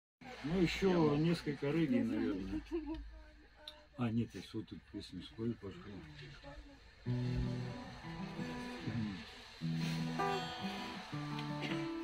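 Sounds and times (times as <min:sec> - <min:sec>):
guitar chords ringing: 0:07.1 - 0:12.0.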